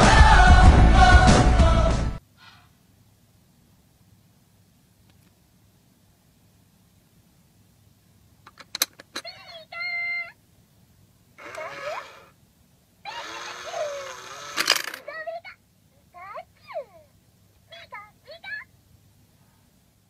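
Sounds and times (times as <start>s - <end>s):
coin clicking on toy tray: 8.5s - 9.3s, 13.2s - 15.1s
toy mechanism noise: 8.5s - 9.8s, 11.4s - 12.4s, 13.0s - 15.5s
high squeaky toy voice: 9.2s - 10.4s, 11.4s - 12.3s, 13.0s - 15.6s, 16.2s - 17.1s, 17.7s - 18.7s.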